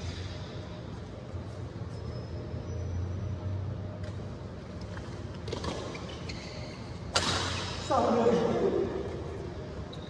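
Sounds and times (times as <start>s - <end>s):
steady low hum: 0.0s - 10.0s
shoe squeaks on court floor: 1.9s - 3.2s, 5.5s - 7.8s
racket striking shuttlecock: 7.1s - 7.8s.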